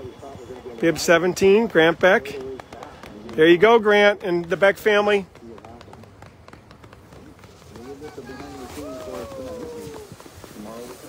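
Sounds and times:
dog paws pattering on snow: 0:00.0 - 0:11.0
faint voices: 0:00.0 - 0:11.0.

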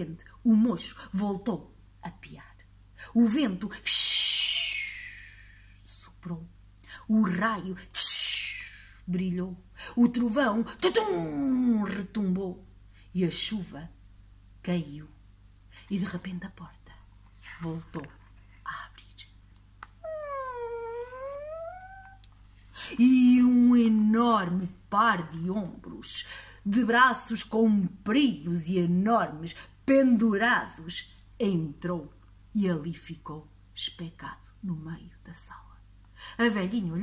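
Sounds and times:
woman making breathy shhh: 0:04.3 - 0:05.8, 0:08.1 - 0:09.0.

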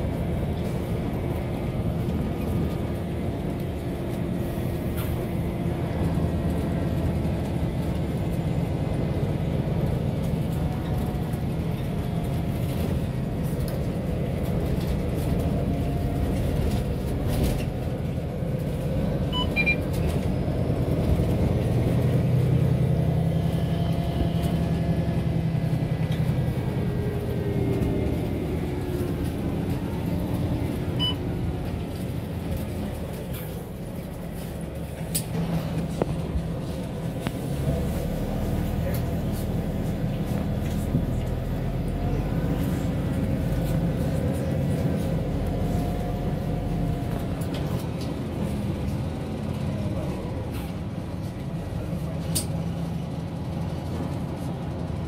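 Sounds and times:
bus engine drone: 0:00.0 - 0:55.0
road noise: 0:00.0 - 0:55.0.

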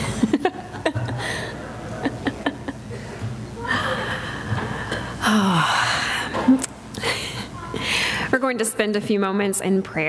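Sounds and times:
woman laughing breathily: 0:00.0 - 0:04.4.

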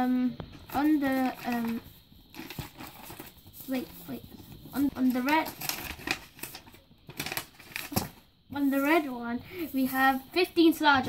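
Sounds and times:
paper rustling and crinkling: 0:00.5 - 0:10.5
child speaking: 0:03.6 - 0:05.6, 0:08.5 - 0:11.0.

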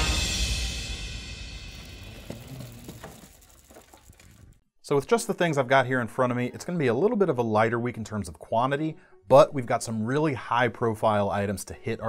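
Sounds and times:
intro theme music: 0:00.0 - 0:02.5
box rolling over conveyor rollers: 0:01.8 - 0:04.4.

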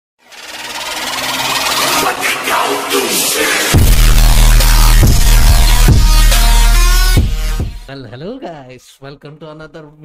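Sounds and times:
synthesized rapid buzzing: 0:00.2 - 0:07.9.

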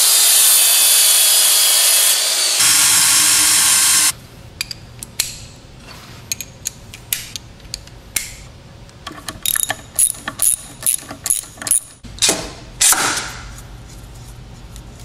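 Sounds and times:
ratchet wrench clicking: 0:09.2 - 0:12.0.

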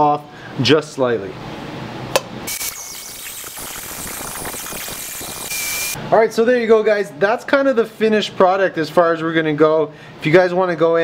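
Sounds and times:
die grinder grinding metal: 0:02.5 - 0:06.0.

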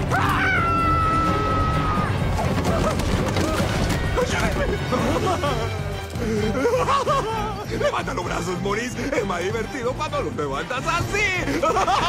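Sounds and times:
film music: 0:00.0 - 0:12.0.

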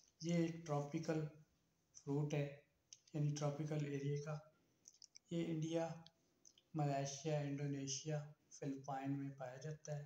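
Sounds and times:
man speaking: 0:00.2 - 0:01.4, 0:02.0 - 0:04.4, 0:05.2 - 0:06.0, 0:06.6 - 0:10.0
faint clicks: 0:02.9 - 0:06.7.

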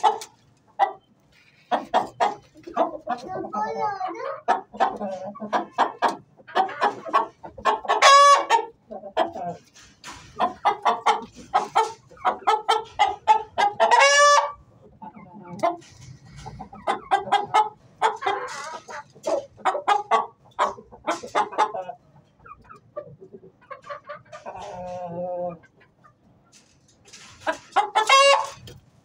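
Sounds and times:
loud drawn-out chicken calls: 0:00.0 - 0:03.2, 0:04.2 - 0:26.1, 0:27.4 - 0:28.8
chickens clucking: 0:00.0 - 0:29.0.

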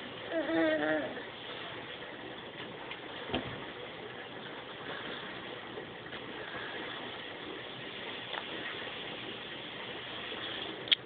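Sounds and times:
steady low background noise: 0:00.0 - 0:11.0.

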